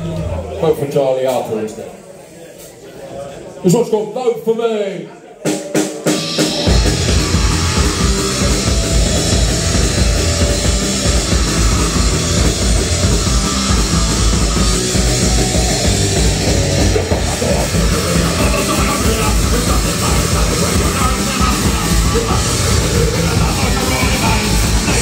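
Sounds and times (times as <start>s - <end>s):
drum kit: 5.4s - 25.0s
distorted electric guitars: 6.0s - 25.0s
bass guitar: 6.1s - 25.0s.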